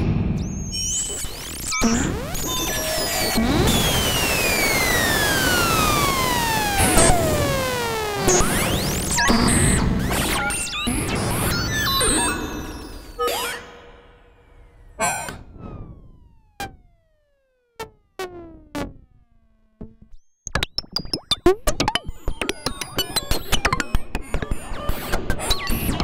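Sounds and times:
synthesizer hiss with pitch sweeps: 2.7s - 9.7s
short falling synth chirps: 17.8s - 23.4s
sharp percussive synth hits: 17.8s - 24.4s.

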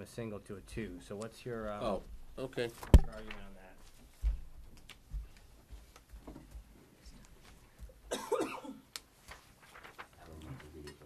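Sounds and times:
person coughing: 8.1s - 8.9s.

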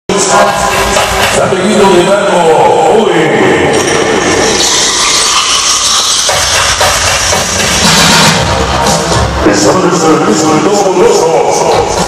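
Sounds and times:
dance music over speakers: 0.1s - 12.0s.

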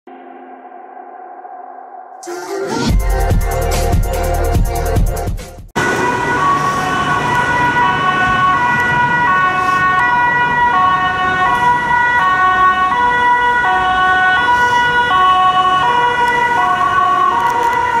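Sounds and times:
road traffic noise: 2.9s - 18.0s
two-tone ambulance siren: 5.8s - 18.0s.

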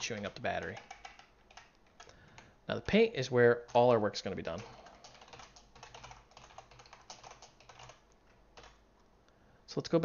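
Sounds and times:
typing on computer keyboard: 0.0s - 3.9s, 4.5s - 8.8s.

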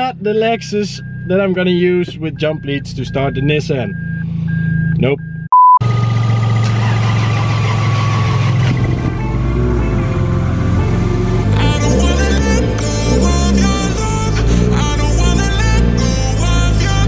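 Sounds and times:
car warning chime beeping: 0.0s - 5.8s
car engine running: 0.0s - 17.0s
music: 9.1s - 17.0s.

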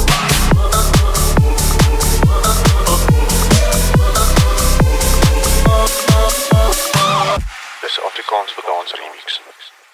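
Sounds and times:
electronic dance music: 0.0s - 9.9s.

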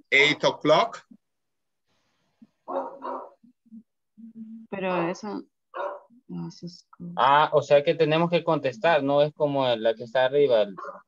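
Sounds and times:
dog barking: 2.6s - 3.4s, 5.7s - 6.1s, 10.8s - 11.0s.

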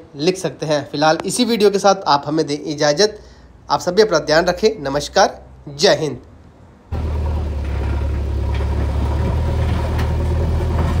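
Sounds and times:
diesel engine running: 6.9s - 11.0s.

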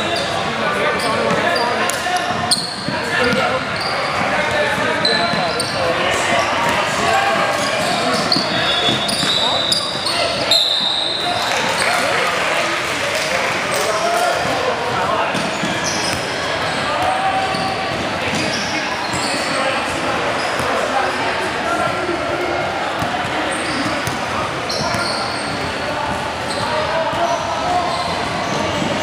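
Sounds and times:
people talking indistinctly: 0.0s - 29.0s.

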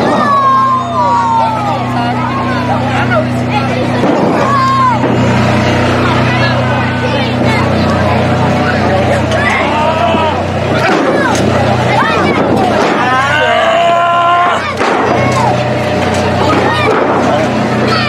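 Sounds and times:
people shouting and yelling: 0.0s - 18.0s
steady low hum: 0.0s - 18.0s
sharp thump: 4.0s - 5.3s.

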